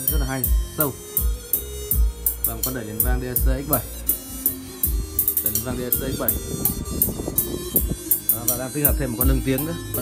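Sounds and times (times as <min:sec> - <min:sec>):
music with drum beat over loudspeaker: 0:00.0 - 0:10.0.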